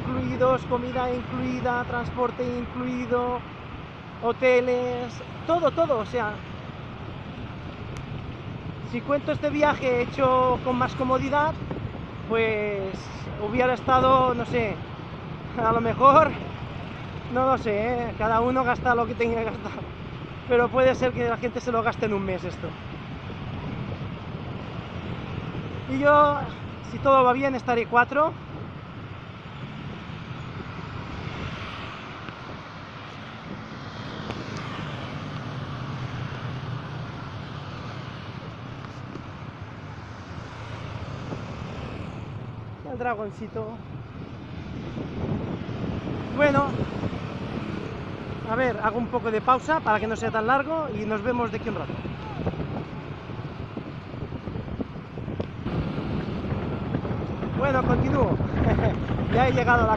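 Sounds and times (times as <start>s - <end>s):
road traffic rumble: 0.0s - 59.9s
wind buffeting microphone: 5.0s - 59.9s.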